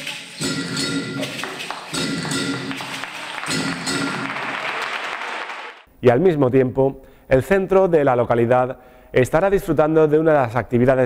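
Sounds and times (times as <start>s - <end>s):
audience applause: 0.8s - 5.9s.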